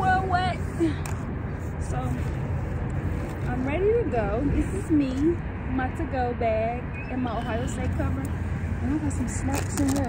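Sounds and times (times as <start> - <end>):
woman's voice: 0.0 - 1.1, 1.8 - 2.3, 3.4 - 10.0
low outdoor rumble: 0.0 - 10.0.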